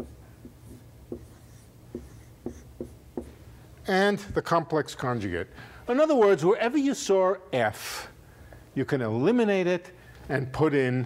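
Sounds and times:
chalk tapping on blackboard: 0:00.0 - 0:03.4
faint low room hum: 0:00.0 - 0:11.0.

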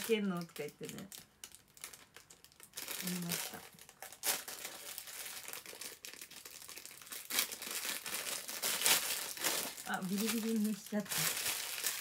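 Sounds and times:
plastic packaging crinkling: 0:00.0 - 0:12.0.

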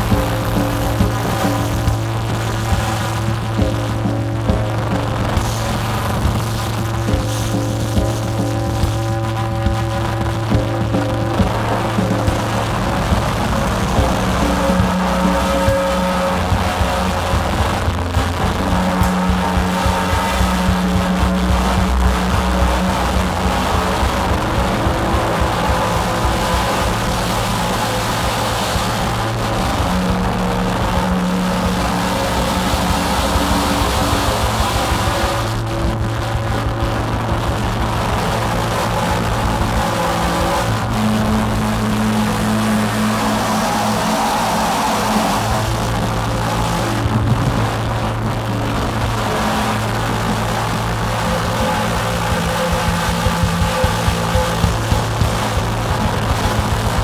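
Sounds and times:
drum kit playing: 0:00.0 - 0:57.0
noisy synthesizer drone: 0:00.0 - 0:57.0.

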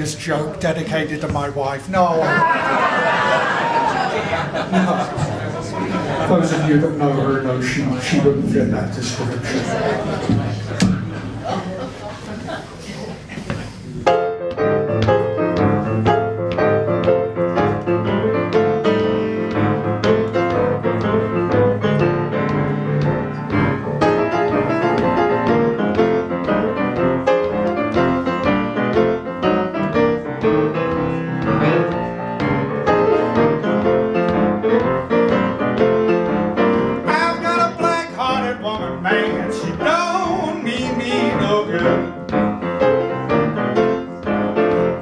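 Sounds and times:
solo blues piano: 0:13.2 - 0:45.0.

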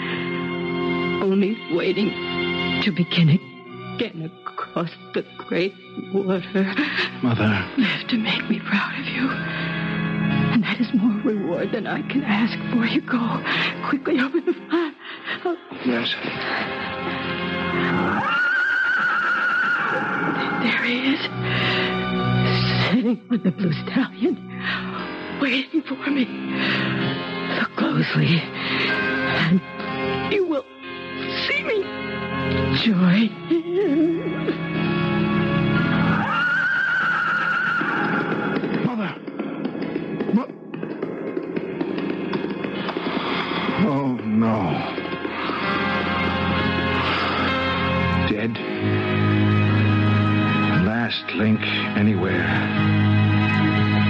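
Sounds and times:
background music: 0:00.0 - 0:54.0
horse whinnying: 0:17.8 - 0:20.8, 0:35.8 - 0:38.9
hoofbeats: 0:35.8 - 0:47.8.

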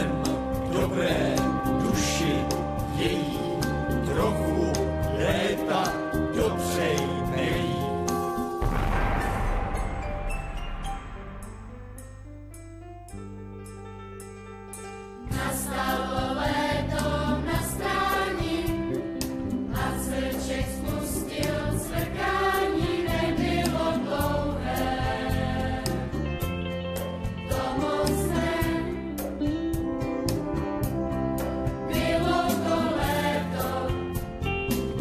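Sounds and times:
instrumental accompaniment: 0:00.0 - 0:35.0
children's choir singing: 0:03.0 - 0:08.2, 0:15.3 - 0:18.9, 0:19.7 - 0:26.2, 0:27.5 - 0:29.0, 0:31.9 - 0:34.0.

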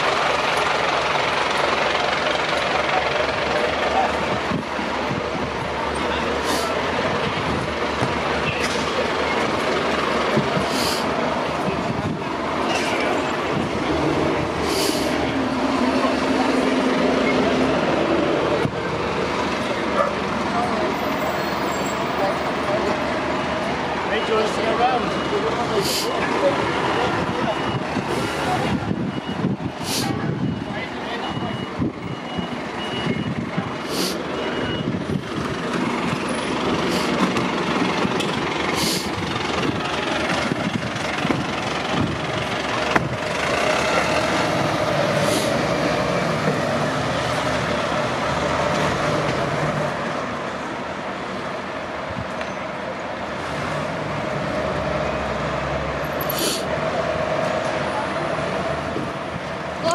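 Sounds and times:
diesel engine running: 0:00.0 - 0:59.9
air brake hisses: 0:10.6 - 0:11.1, 0:14.6 - 0:15.2, 0:29.8 - 0:30.2, 0:33.8 - 0:34.3, 0:36.8 - 0:37.2, 0:38.8 - 0:39.2, 0:56.2 - 0:56.7
reversing beeper: 0:23.4 - 0:29.6, 0:30.2 - 0:35.1.

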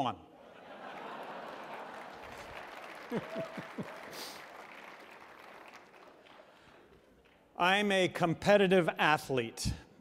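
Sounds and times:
audience applauding: 0:00.8 - 0:07.4.

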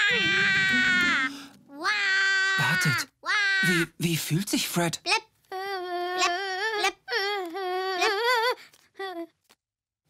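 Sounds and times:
cartoon boy wailing: 0:00.0 - 0:03.7, 0:05.6 - 0:08.6.

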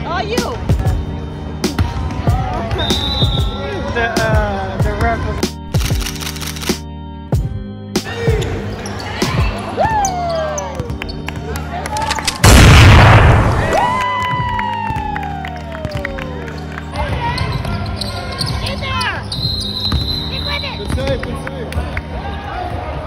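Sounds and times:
background music: 0:00.0 - 0:23.0
boom sound effect: 0:12.4 - 0:13.8
voices in gym: 0:16.9 - 0:23.0.

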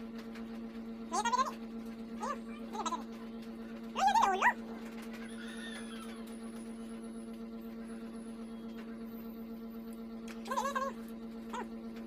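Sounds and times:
steady low hum: 0:00.0 - 0:12.0
dog whining: 0:02.2 - 0:03.2, 0:04.0 - 0:06.4.

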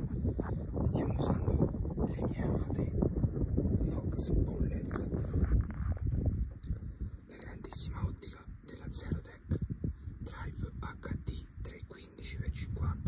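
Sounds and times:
low rumble: 0:00.0 - 0:13.0
whispered speech: 0:00.4 - 0:03.0, 0:03.8 - 0:05.9, 0:07.3 - 0:09.6, 0:10.2 - 0:13.0.

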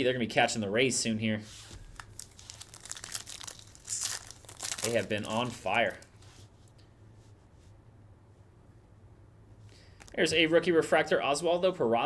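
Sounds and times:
foil wrapper crinkling and tearing: 0:01.7 - 0:06.1.

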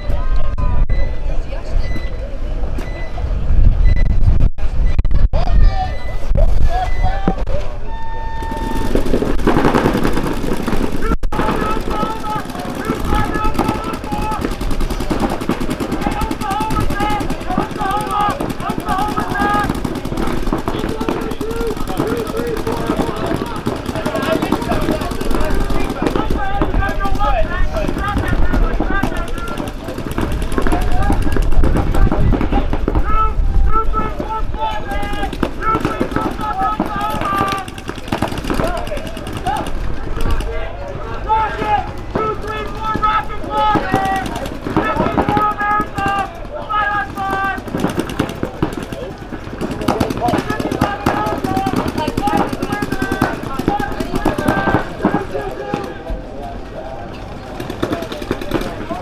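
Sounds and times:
voices shouting: 0:05.4 - 0:59.0
paintball markers firing: 0:08.5 - 0:33.1, 0:34.2 - 0:40.6, 0:41.6 - 0:56.1, 0:57.5 - 0:59.0.

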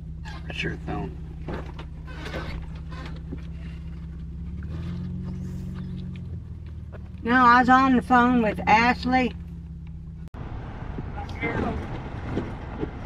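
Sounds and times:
car engine hum from cabin: 0:00.0 - 0:13.0.

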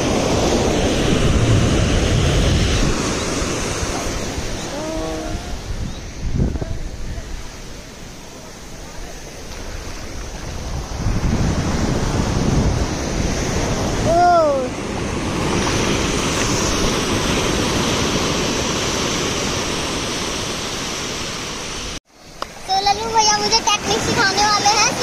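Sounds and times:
ocean surf breaking: 0:00.0 - 0:25.0.

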